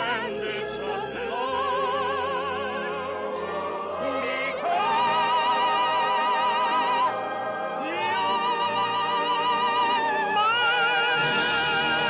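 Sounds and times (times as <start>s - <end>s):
operatic singing duet: 0.0s - 12.0s
orchestra: 0.0s - 12.0s.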